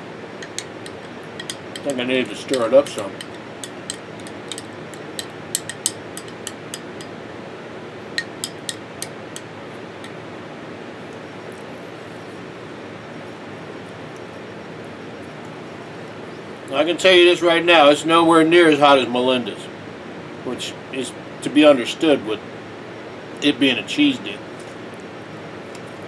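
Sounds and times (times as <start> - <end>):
room hiss: 0.0 - 25.6
spoon clinking against glass jar: 0.4 - 7.2, 8.2 - 9.2.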